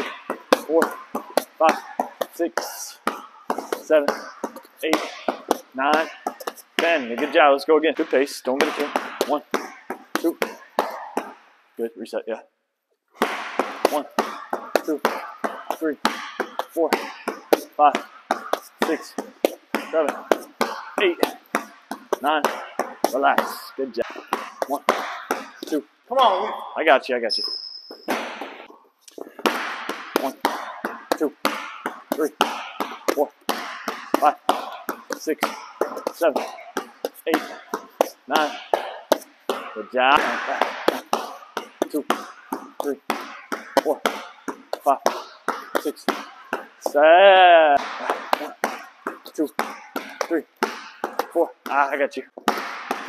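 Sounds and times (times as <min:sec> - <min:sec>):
basketball bouncing on hardwood: 0:00.0 - 0:11.4, 0:13.2 - 0:25.8, 0:27.4 - 0:47.0, 0:47.8 - 0:53.0
foam roller slapping: 0:13.2 - 0:25.8, 0:28.2 - 0:53.0.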